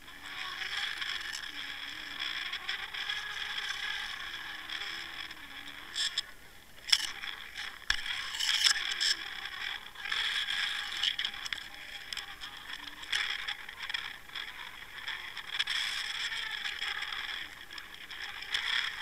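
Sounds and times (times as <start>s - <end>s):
faint wavering low hum: 0.0s - 19.0s.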